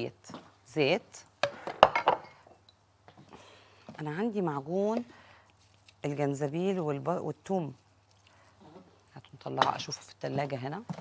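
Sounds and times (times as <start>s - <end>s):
glass bottle handling: 1.4s - 2.7s.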